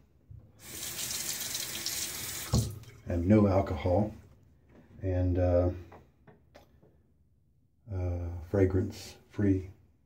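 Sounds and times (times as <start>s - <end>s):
faucet running water into basin: 0.6s - 3.0s.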